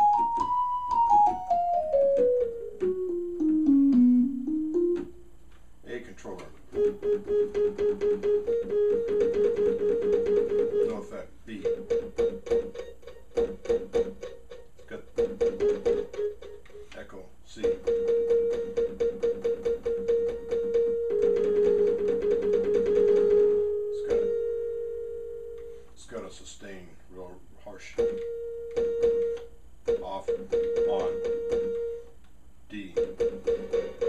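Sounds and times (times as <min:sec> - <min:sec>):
held synthesizer chord: 0:00.0 - 0:05.4, 0:17.8 - 0:25.8
repeated synthesizer percussive notes: 0:00.0 - 0:05.4, 0:06.7 - 0:17.0, 0:28.0 - 0:32.2, 0:32.9 - 0:34.0.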